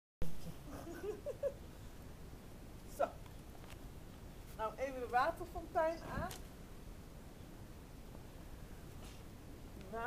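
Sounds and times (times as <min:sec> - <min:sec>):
low background noise: 0:00.2 - 0:10.0.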